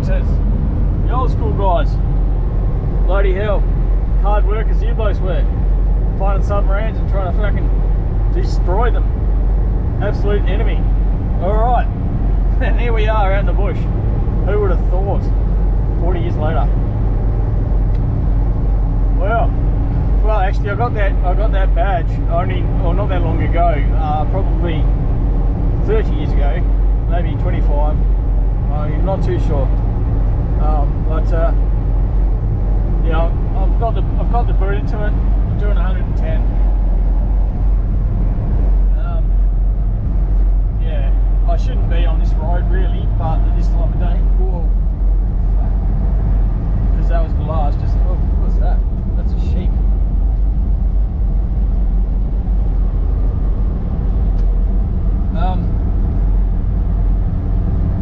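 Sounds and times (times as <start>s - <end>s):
engine and tyre drone in cab: 0.0s - 58.0s.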